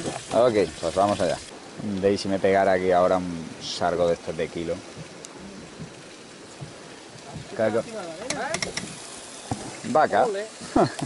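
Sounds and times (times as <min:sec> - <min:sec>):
steady crackling hiss: 0:00.0 - 0:11.0
voice: 0:00.3 - 0:04.8, 0:07.3 - 0:08.7, 0:09.8 - 0:11.0.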